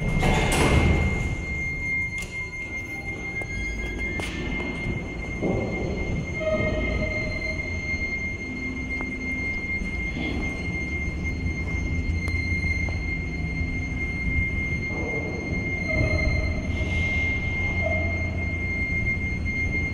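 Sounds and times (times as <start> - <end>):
elevator low rumble: 0.0 - 19.9
high-pitched whine: 0.0 - 19.9.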